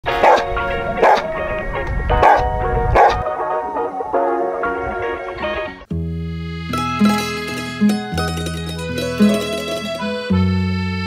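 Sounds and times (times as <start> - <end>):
background music: 0.0 - 11.0
dog barking: 0.1 - 1.3, 2.2 - 3.2.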